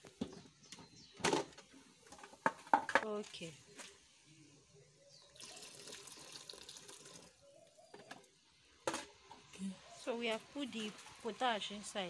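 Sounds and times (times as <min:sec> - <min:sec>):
liquid splashing into a pot: 0:05.4 - 0:07.4.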